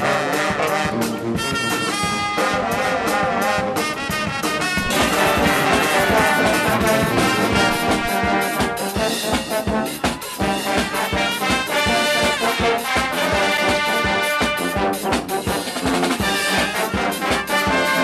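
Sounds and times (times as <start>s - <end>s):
brass band playing: 0.0s - 18.0s.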